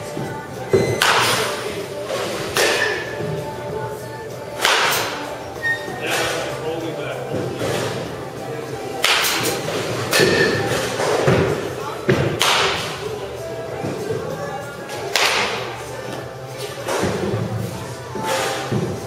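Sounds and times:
balls striking cage: 0.2 - 1.6, 2.4 - 3.4, 4.6 - 5.3, 9.0 - 13.1, 14.9 - 15.9, 16.6 - 19.0
bat hitting balls: 0.8 - 1.6, 2.5 - 3.2, 4.6 - 5.3, 9.0 - 13.0, 15.0 - 15.9.

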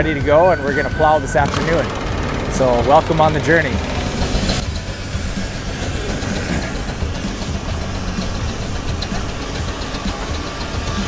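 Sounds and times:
steam traction engine clattering: 0.0 - 11.0
steam hiss: 1.5 - 11.0.

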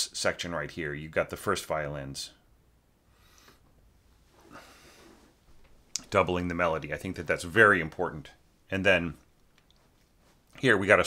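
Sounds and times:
mouth click: 5.9 - 6.1.

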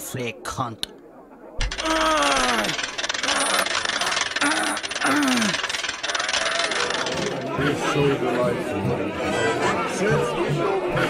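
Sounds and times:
hand crank rattling: 1.6 - 7.6
voice-like groans: 1.8 - 3.7.

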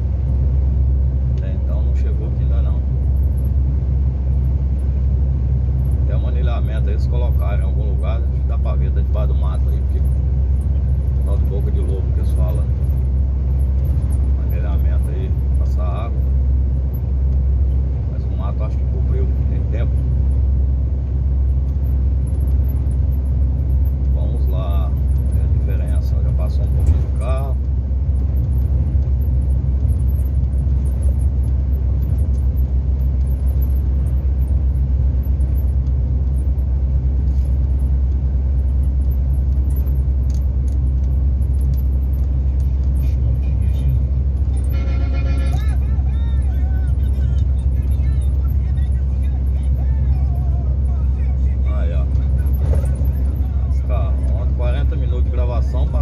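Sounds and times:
road noise: 0.0 - 56.0
truck engine drone: 0.0 - 56.0.

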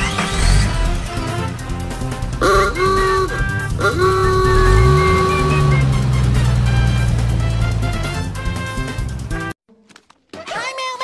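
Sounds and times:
vehicle engine driving off: 0.0 - 9.6
music: 0.0 - 10.6
vehicle horn honking: 2.4 - 9.5.

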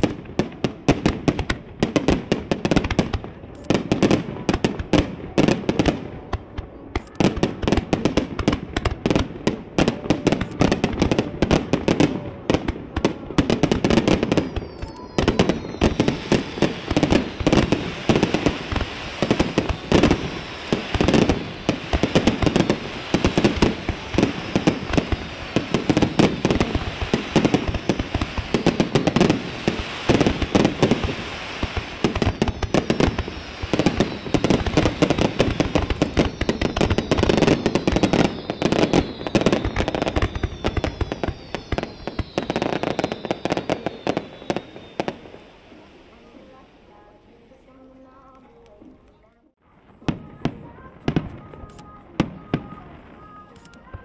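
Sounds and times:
fireworks booming and crackling: 0.0 - 47.1, 49.7 - 54.0
firework whistles falling in pitch: 13.6 - 45.8.

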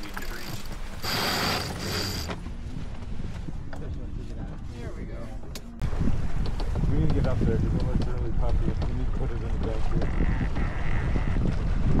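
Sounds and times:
water noise: 0.0 - 12.0
wind: 0.0 - 12.0.

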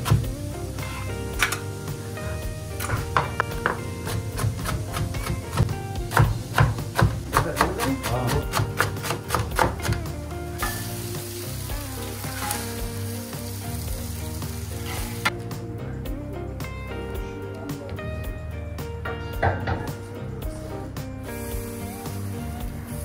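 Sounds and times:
food sizzling: 0.0 - 15.5, 21.2 - 23.0
background music: 0.0 - 23.0
knife chopping on plastic board: 2.9 - 10.1.

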